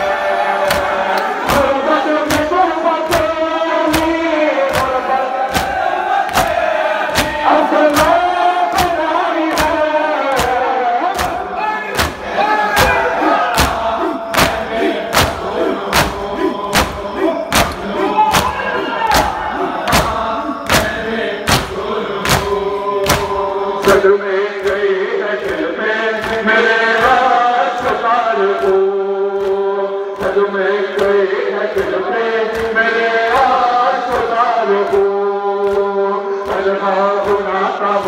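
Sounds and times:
men chanting in unison: 0.0 - 38.0
hands slapping bare chests: 0.6 - 24.0.

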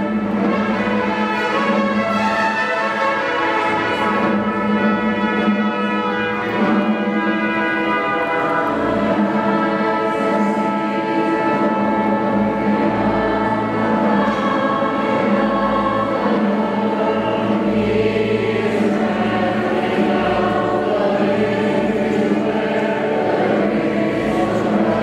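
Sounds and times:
choir singing sustained chords: 0.0 - 25.0
instrumental accompaniment: 0.0 - 25.0.

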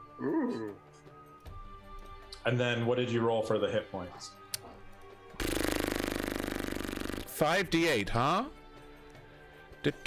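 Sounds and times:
pulsing buzz: 5.4 - 7.3.

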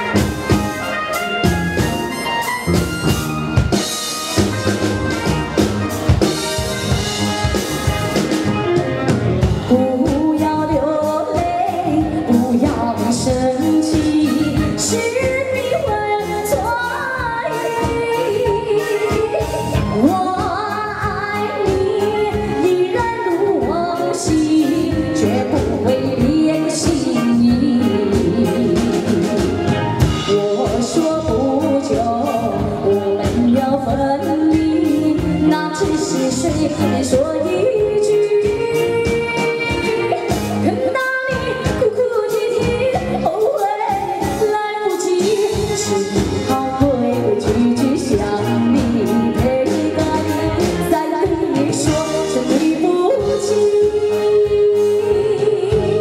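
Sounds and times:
live band playing: 0.0 - 56.0
woman singing pop ballad: 9.6 - 56.0.

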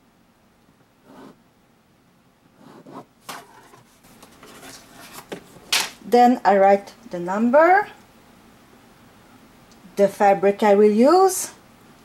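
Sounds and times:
pen scratching along a ruler: 1.0 - 1.4, 2.6 - 3.8
paper rubbing: 2.6 - 5.3.

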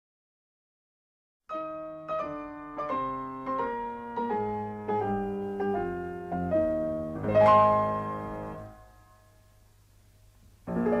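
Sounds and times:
slow piano music: 1.5 - 9.6, 10.6 - 11.0.

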